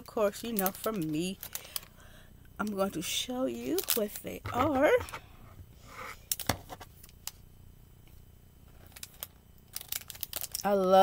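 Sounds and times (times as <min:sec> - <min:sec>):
packet rustling: 0:00.3 - 0:01.9, 0:03.5 - 0:05.2, 0:08.7 - 0:11.0.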